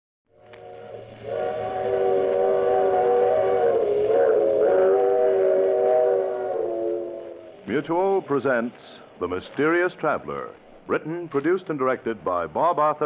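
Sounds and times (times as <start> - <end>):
steam locomotive whistle: 0.4 - 7.7.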